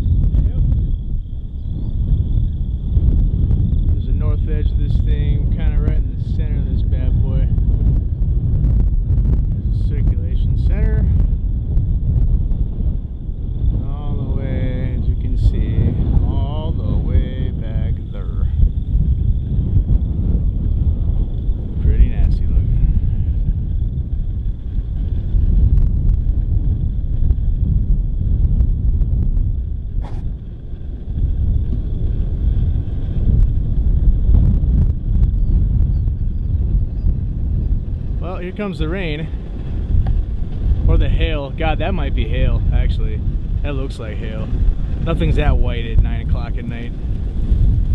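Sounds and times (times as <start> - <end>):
wind buffeting microphone: 0.0 - 47.9.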